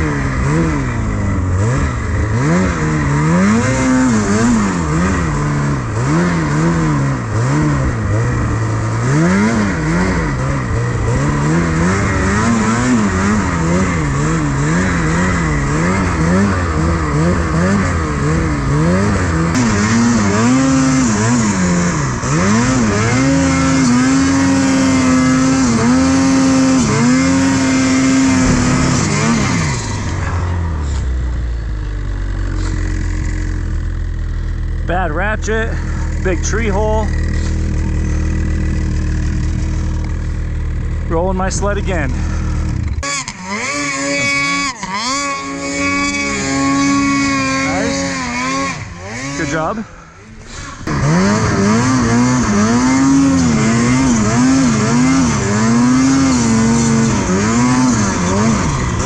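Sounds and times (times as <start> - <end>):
snowmobile engine revving: 0.0 - 59.0.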